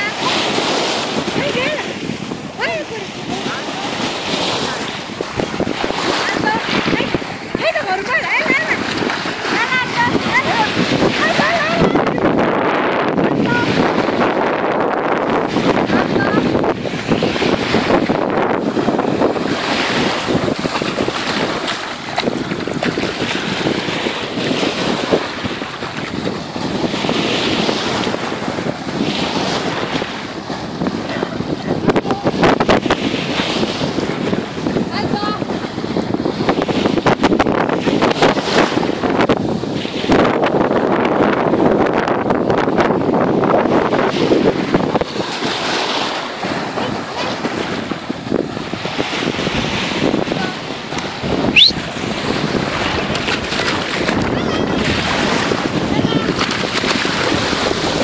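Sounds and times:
small waves breaking on sand: 0:00.0 - 0:58.0
wind buffeting microphone: 0:00.0 - 0:58.0.

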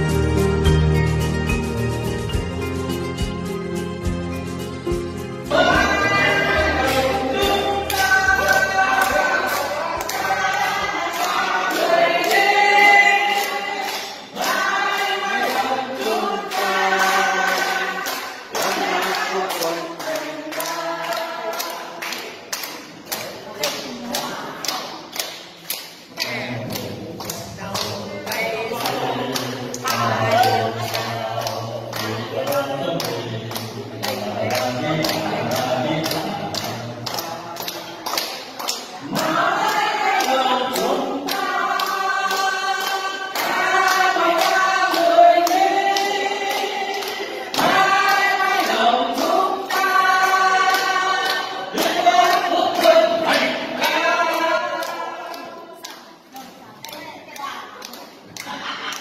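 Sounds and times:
group of voices singing: 0:04.9 - 0:57.0
hand-clapping in time: 0:05.6 - 0:59.0.

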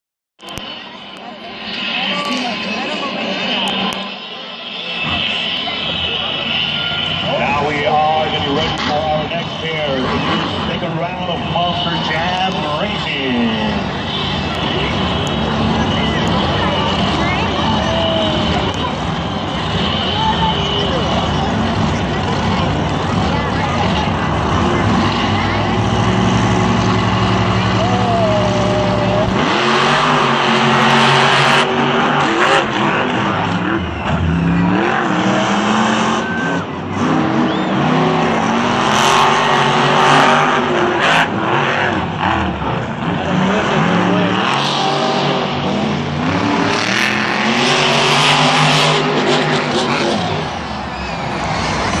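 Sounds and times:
stadium crowd din: 0:00.4 - 0:52.0
truck engines revving: 0:00.4 - 0:52.0.

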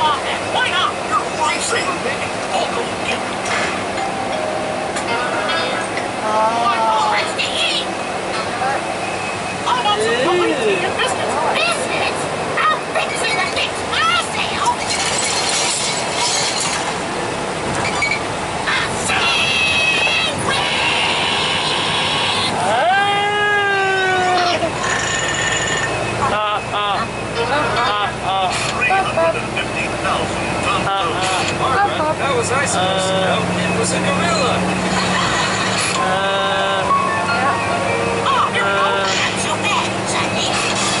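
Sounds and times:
bus road and engine noise: 0:00.0 - 0:41.0
high-pitched voices: 0:18.6 - 0:25.0, 0:34.2 - 0:41.0.

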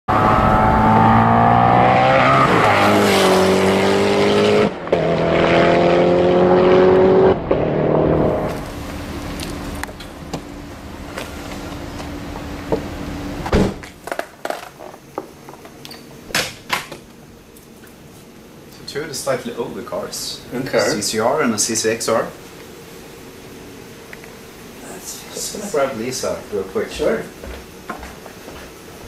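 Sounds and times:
car engine accelerating hard: 0:00.1 - 0:08.9.

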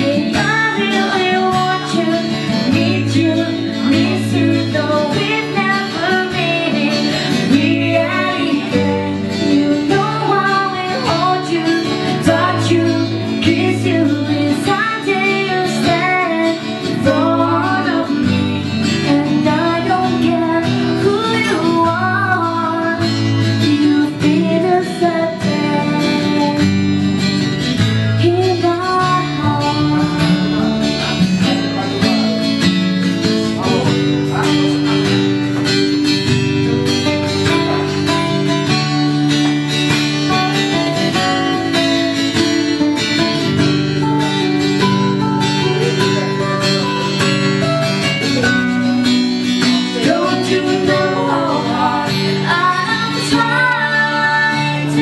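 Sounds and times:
acoustic guitar: 0:00.0 - 0:55.0
woman singing: 0:00.0 - 0:55.0.

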